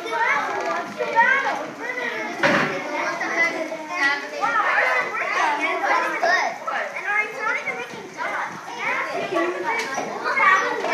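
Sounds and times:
children talking and calling out: 0.0 - 10.9.

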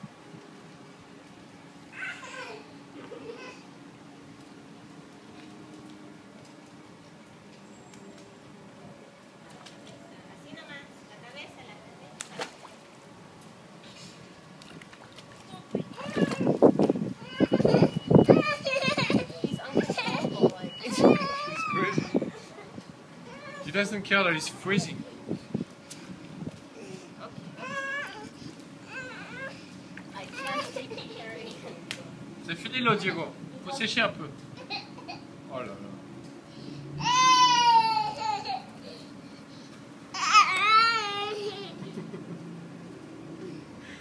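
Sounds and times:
toddler whining cry: 1.9 - 2.7, 17.2 - 19.2, 20.9 - 22.4, 23.2 - 23.7, 27.6 - 29.7, 37.0 - 39.1, 40.1 - 41.8.

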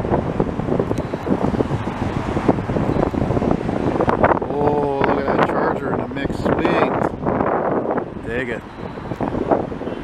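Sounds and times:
passing cars rumbling: 0.0 - 10.0
wind buffeting microphone: 0.0 - 10.0.

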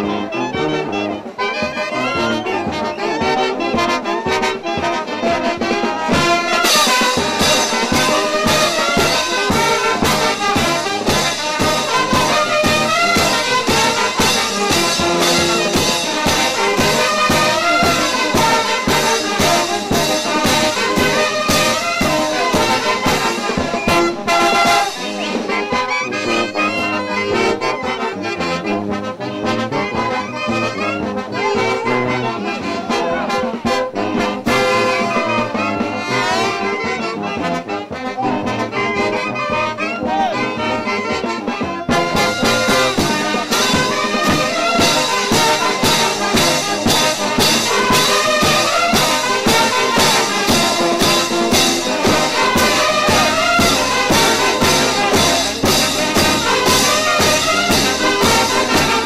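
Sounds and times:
brass band playing: 0.0 - 59.0
bass drum and cymbal beat: 5.6 - 25.9, 41.6 - 59.0.

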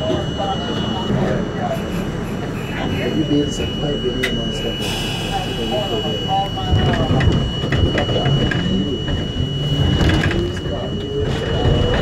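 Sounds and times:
people's voices: 0.0 - 12.0
subway train rumble and whine: 0.0 - 12.0.

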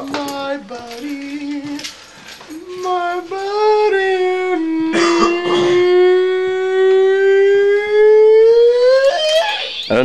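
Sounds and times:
man singing a long high note: 2.5 - 9.4.

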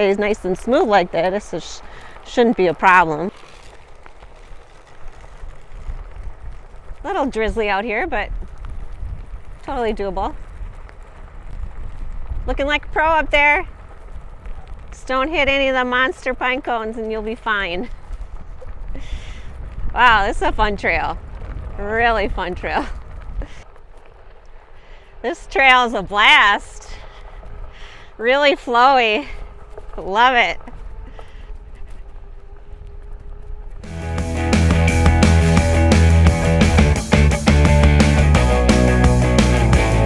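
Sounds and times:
wind rumble on microphone: 0.0 - 36.6
tyre rolling over dirt: 0.0 - 40.0.

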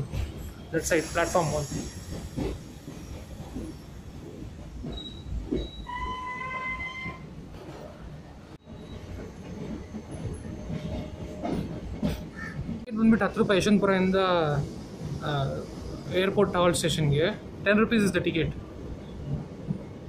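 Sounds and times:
train rumble from inside coach: 0.0 - 20.0.

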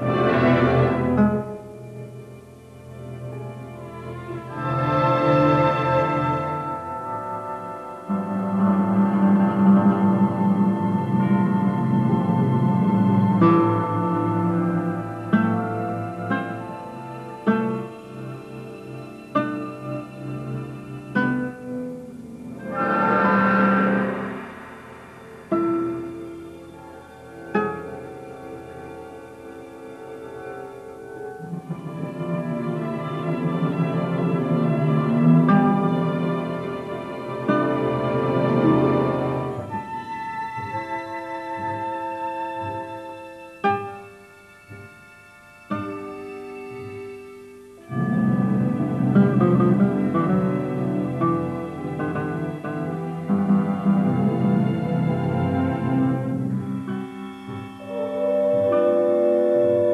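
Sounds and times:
plucked classical guitar chord: 4.7 - 29.3, 45.6 - 59.9
orchestral swell: 22.1 - 27.6, 47.9 - 59.9.

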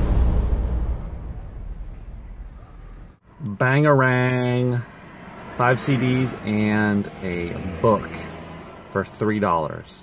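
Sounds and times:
loud low rumble: 0.0 - 3.2.

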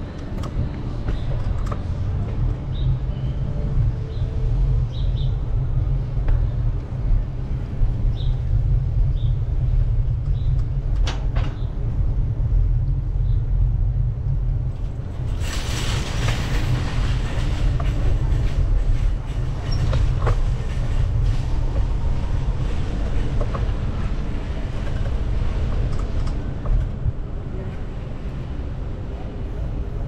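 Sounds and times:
tyres rolling on concrete: 14.8 - 27.1.

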